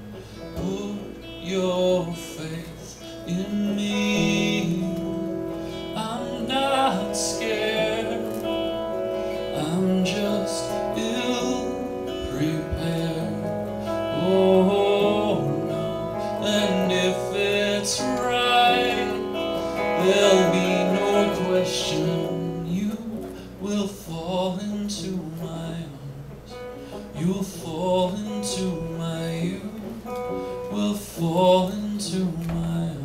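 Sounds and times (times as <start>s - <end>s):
electric guitar: 0.0s - 33.0s
man singing: 0.0s - 33.0s.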